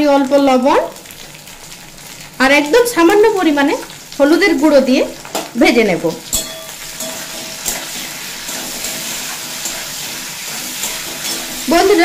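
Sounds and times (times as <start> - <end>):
okra frying in oil: 0.0 - 12.0.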